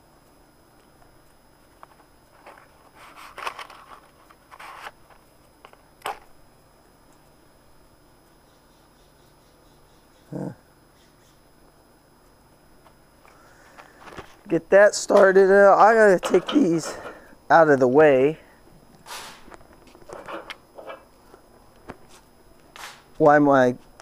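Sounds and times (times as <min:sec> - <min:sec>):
charcoal scraping and rustling: 0:02.3 - 0:05.0
person grunting: 0:10.3 - 0:10.6.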